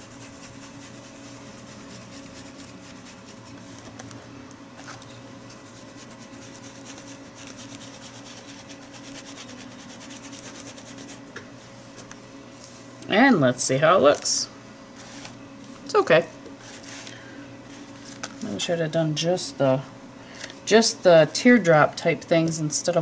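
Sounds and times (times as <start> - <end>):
foam dauber patting paper: 0.0 - 4.0, 4.8 - 11.3
low steady hum: 0.0 - 23.0.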